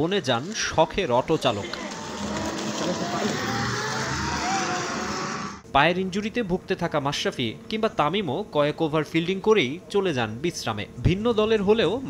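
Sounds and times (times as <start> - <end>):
motorised cart humming: 0.2 - 5.6.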